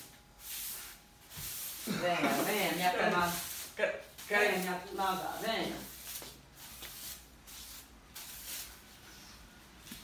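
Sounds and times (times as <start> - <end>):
broom sweeping floor: 0.0 - 10.0.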